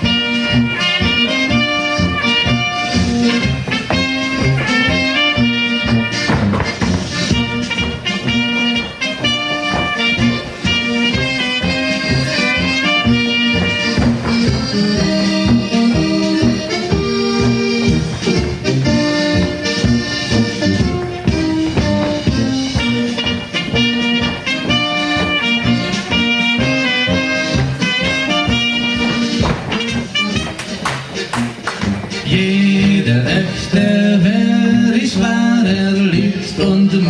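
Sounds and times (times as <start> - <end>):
brass band folk dance music: 0.0 - 37.0.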